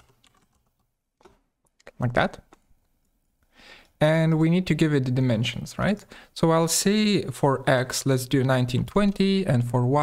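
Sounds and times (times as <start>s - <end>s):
computer keyboard keystrokes: 0.0s - 1.4s.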